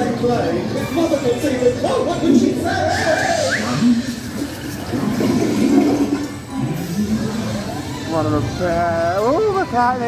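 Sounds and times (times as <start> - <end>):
toilet flushing water rush: 4.3 - 6.4.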